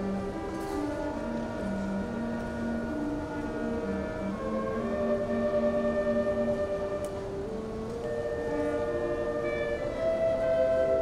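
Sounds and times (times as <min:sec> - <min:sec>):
concert band playing slow chords: 0:00.0 - 0:11.0.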